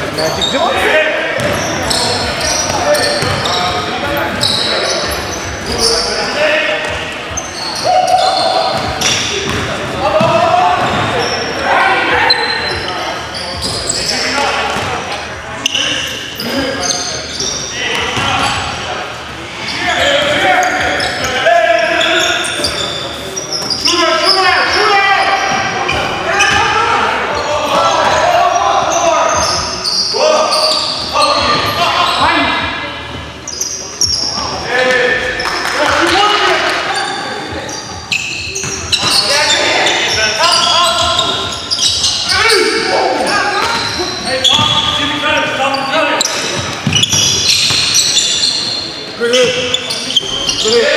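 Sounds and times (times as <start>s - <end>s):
players shouting: 0.4s - 14.9s, 19.6s - 32.8s
basketball bouncing on wooden floor: 3.2s - 3.4s, 8.8s - 11.1s.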